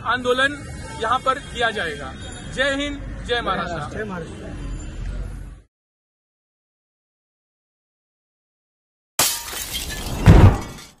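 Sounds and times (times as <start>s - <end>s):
glass breaking crash: 9.2s - 11.0s.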